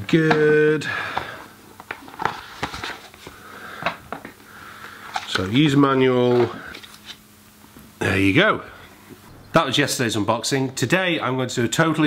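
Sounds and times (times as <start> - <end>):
packaging rustling: 1.1 - 7.2.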